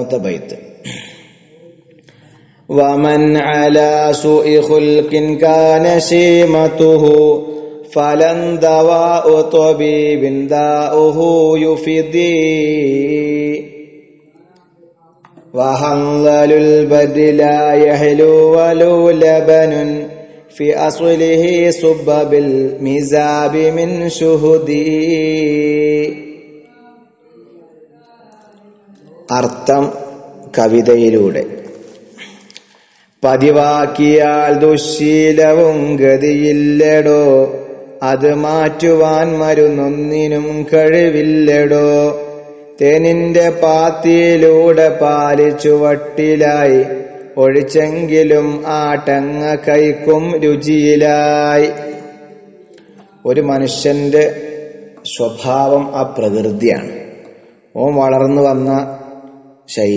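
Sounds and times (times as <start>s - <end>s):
man chanting melodic recitation: 0.0s - 59.9s.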